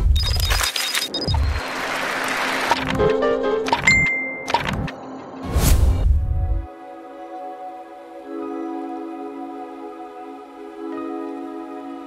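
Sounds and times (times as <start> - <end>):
pulsing high electronic beeping: 0.0 - 1.7
advert music: 6.0 - 12.0.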